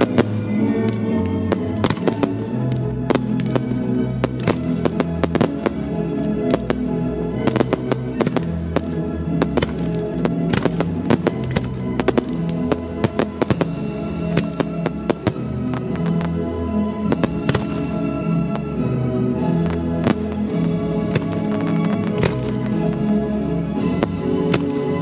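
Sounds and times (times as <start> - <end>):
fireworks bursting and crackling: 0.0 - 25.0
orchestral music: 0.0 - 25.0.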